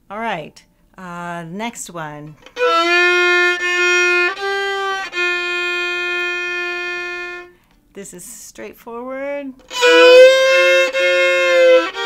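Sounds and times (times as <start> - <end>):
fiddle playing double stops: 2.4 - 7.5, 9.6 - 12.0.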